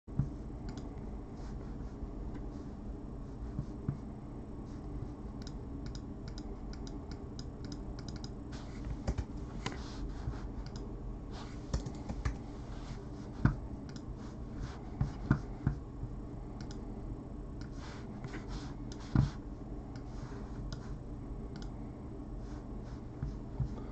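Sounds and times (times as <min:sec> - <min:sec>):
low background hum: 0:00.0 - 0:23.9
keyboard keys clicking: 0:11.7 - 0:12.4.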